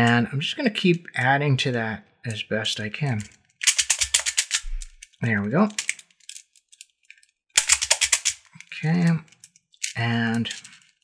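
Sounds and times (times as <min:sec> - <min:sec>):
plastic beads rattling and clicking: 0:03.1 - 0:11.0.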